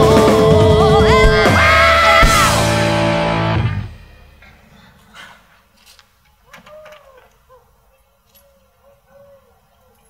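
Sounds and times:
rock band ending a song: 0:00.0 - 0:04.4.

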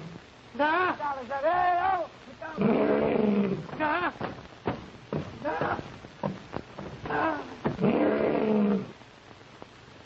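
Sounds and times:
lion roaring: 0:02.6 - 0:03.7, 0:07.0 - 0:08.9.

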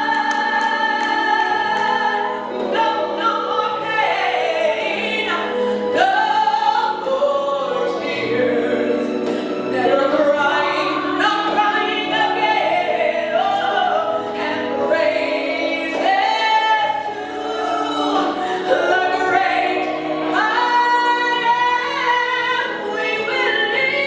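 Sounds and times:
woman singing into microphone: 0:00.0 - 0:24.0.

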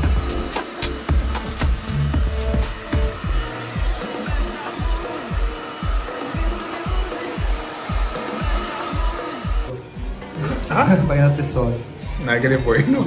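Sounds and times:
hair dryer blowing: 0:00.0 - 0:09.9
background music with beat: 0:00.0 - 0:13.0.

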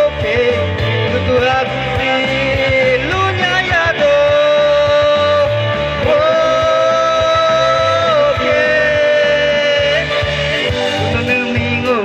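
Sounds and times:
man singing into microphone: 0:00.0 - 0:12.0
rock backing music with bass: 0:00.0 - 0:12.0.

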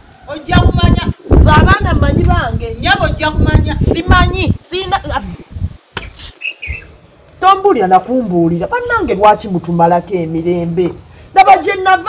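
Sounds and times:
small bird chirping: 0:06.0 - 0:07.3.

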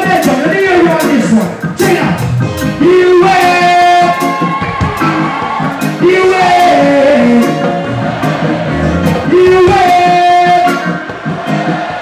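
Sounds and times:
live reggae band playing: 0:00.0 - 0:12.0.

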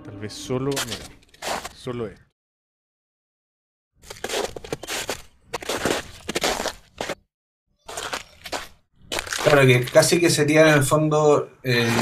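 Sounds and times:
bag crunching and rustling: 0:07.9 - 0:10.0.

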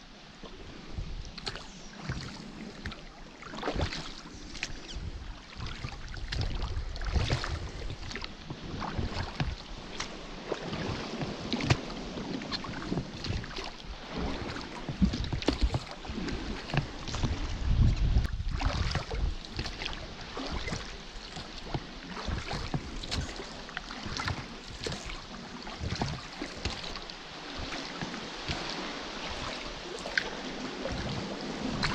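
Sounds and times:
water lapping against a rubber hull: 0:00.0 - 0:31.9
wind buffeting microphone: 0:03.8 - 0:09.9, 0:10.7 - 0:21.0.

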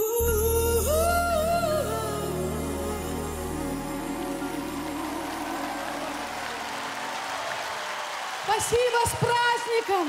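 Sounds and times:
live band sustained chord: 0:00.0 - 0:08.4
crowd applause: 0:03.0 - 0:10.0.

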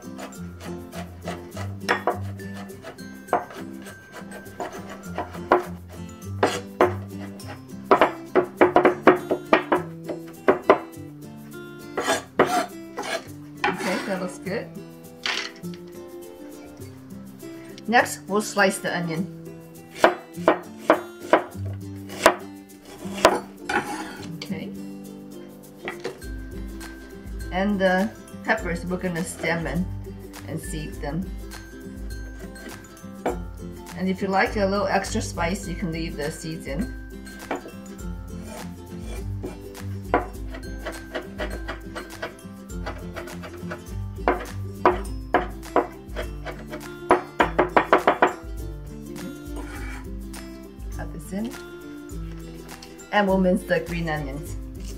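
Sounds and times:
background music: 0:00.0 - 0:54.9
cleaver knocking cutting board: 0:00.9 - 0:02.3, 0:03.3 - 0:05.8, 0:06.4 - 0:07.0, 0:07.9 - 0:10.9, 0:20.0 - 0:21.5, 0:22.2 - 0:22.4, 0:23.1 - 0:24.2, 0:39.4 - 0:48.4.

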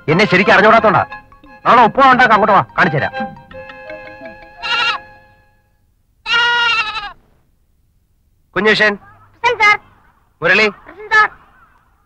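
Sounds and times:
soft background music: 0:00.0 - 0:05.8
goat-like bleats: 0:04.6 - 0:05.0, 0:06.2 - 0:07.2.

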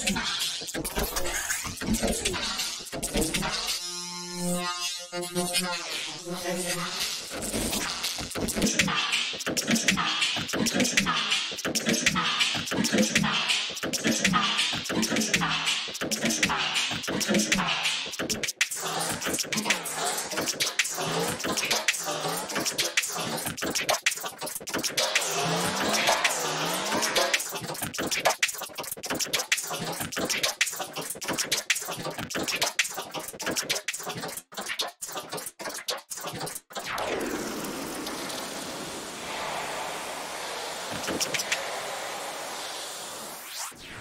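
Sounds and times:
stuttering garbled vocal chops: 0:00.0 - 0:03.7, 0:06.5 - 0:37.2
washy reverb tail: 0:39.0 - 0:43.7.

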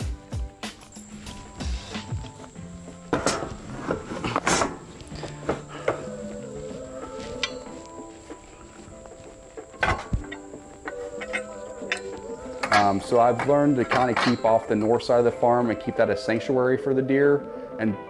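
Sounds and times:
high insect buzz: 0:00.0 - 0:15.6
background music: 0:00.0 - 0:18.0
metal sections clanking and rattling: 0:03.1 - 0:06.0.

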